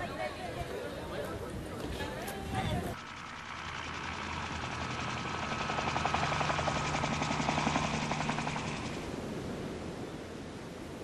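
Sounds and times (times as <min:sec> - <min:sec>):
helicopter rotor chopping: 0:01.9 - 0:09.5.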